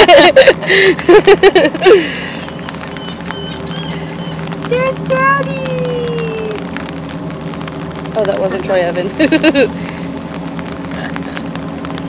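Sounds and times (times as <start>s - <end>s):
boat engines idling: 0.0s - 12.0s.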